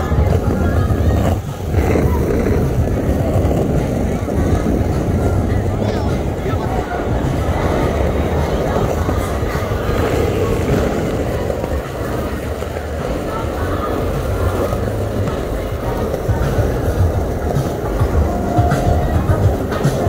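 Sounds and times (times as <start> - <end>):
background music: 0.0 - 20.0
traffic rumble: 0.0 - 20.0
voices: 0.0 - 20.0.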